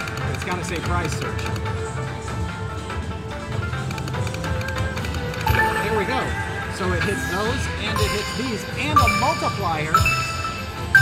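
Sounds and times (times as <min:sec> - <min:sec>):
slot machine bonus music: 0:04.3 - 0:11.0.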